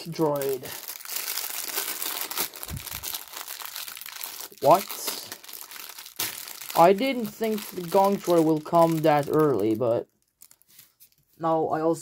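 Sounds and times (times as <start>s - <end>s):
plastic bag crinkling: 0.0s - 11.4s.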